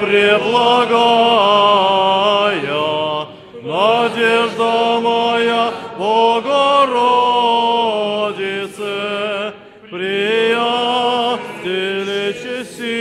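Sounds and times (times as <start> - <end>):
choir chanting a hymn: 0.0 - 13.0.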